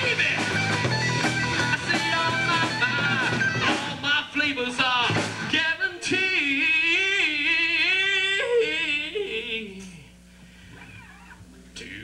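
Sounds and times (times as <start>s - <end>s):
quiet low hum: 3.9s - 12.0s.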